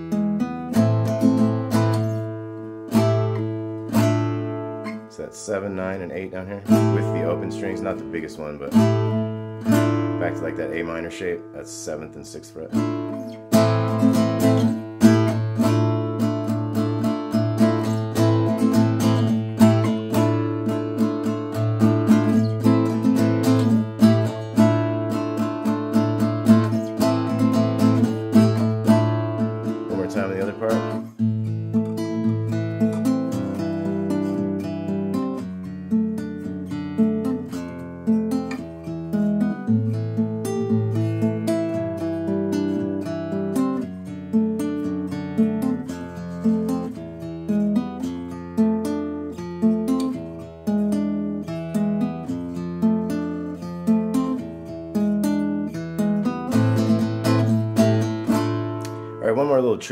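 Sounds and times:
fingerpicked acoustic guitar: 0:00.0 - 0:59.9.

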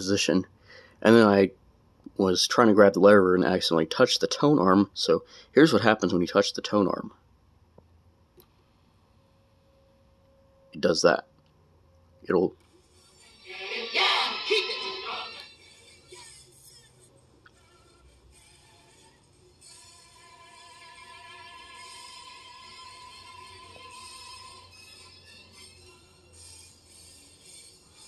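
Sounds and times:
music from vinyl record: 0:12.7 - 0:28.0.

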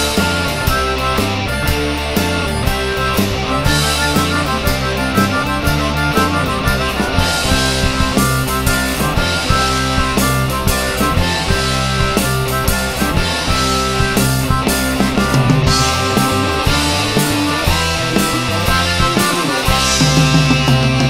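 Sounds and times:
distorted electric guitars: 0:00.0 - 0:21.0
drum kit beat: 0:00.0 - 0:21.0.

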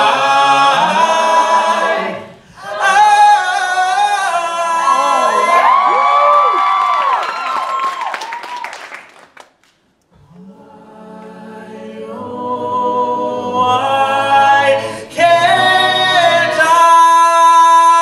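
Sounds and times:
a cappella choir singing: 0:00.0 - 0:05.6, 0:10.1 - 0:18.0.

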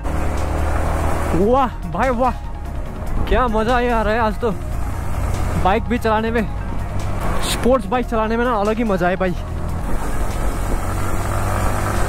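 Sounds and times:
motorcycle engine running: 0:00.0 - 0:08.8, 0:09.4 - 0:12.0
wind and road noise: 0:00.0 - 0:12.0.

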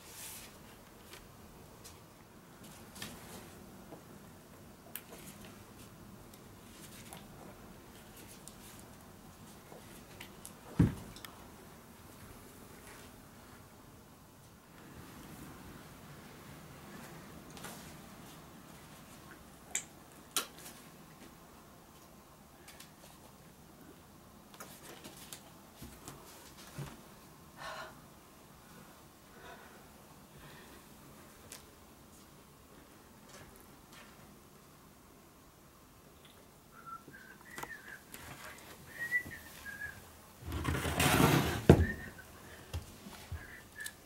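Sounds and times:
faint steady hiss: 0:00.0 - 0:44.0
person whistling softly: 0:36.7 - 0:40.1, 0:41.8 - 0:42.6, 0:43.2 - 0:44.0.

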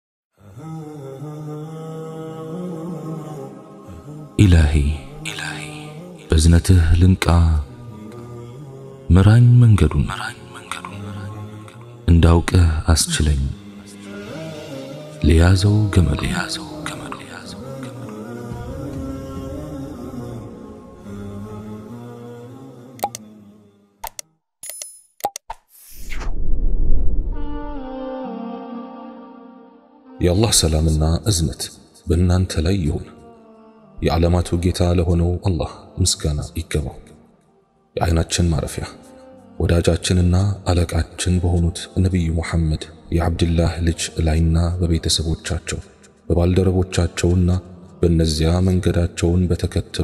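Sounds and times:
man chanting: 0:00.4 - 0:22.6, 0:30.2 - 0:37.2, 0:38.0 - 0:50.0
whoosh: 0:25.7 - 0:27.9.

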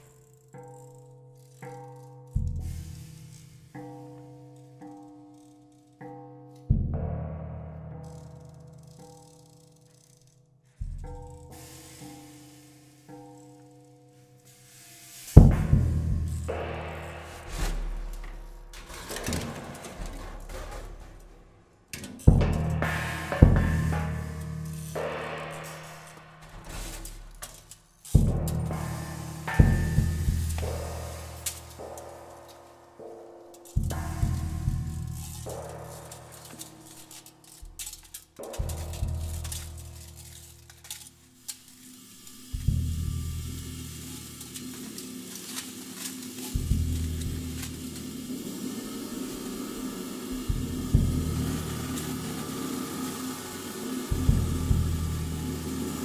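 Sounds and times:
drum hits with humming tones: 0:06.7 - 0:08.5, 0:10.8 - 0:13.6, 0:15.2 - 0:40.8, 0:42.2 - 0:56.0.

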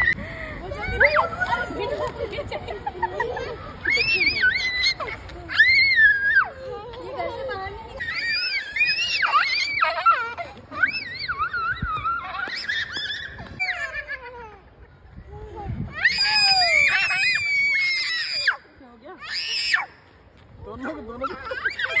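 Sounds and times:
children screaming and shrieking: 0:00.0 - 0:20.2, 0:21.1 - 0:22.0.

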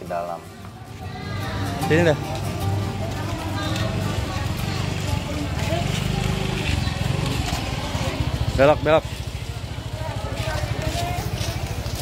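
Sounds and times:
music: 0:00.0 - 0:05.4
market voices: 0:00.0 - 0:12.0
motorcycle engine running: 0:00.4 - 0:12.0.

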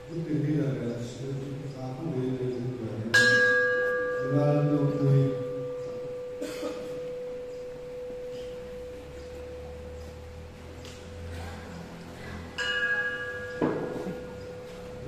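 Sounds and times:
brass bell ringing: 0:03.1 - 0:09.9, 0:12.6 - 0:15.0.

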